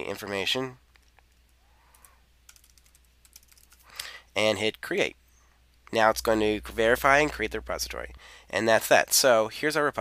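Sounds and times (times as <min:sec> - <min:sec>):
typing on computer keyboard: 0:01.4 - 0:03.9.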